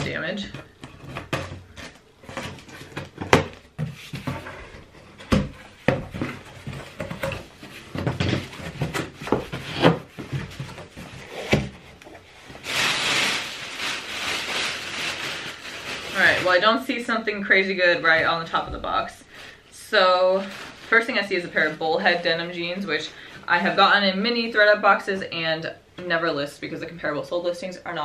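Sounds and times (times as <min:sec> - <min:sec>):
cardboard flaps knocking: 0:05.2 - 0:11.8
wrapping crinkling rustle: 0:07.6 - 0:17.1, 0:19.3 - 0:23.8.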